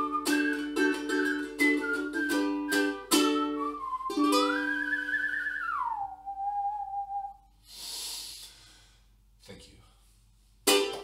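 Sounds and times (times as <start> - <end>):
ukulele chord ringing: 0.0 - 5.2, 10.7 - 11.0
whistled melody: 0.0 - 7.5
soft exhale: 7.6 - 9.1.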